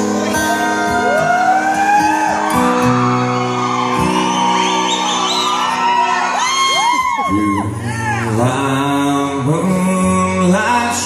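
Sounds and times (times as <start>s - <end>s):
audience whooping and shouting: 0.0s - 8.4s
acoustic guitar strumming: 0.0s - 11.0s.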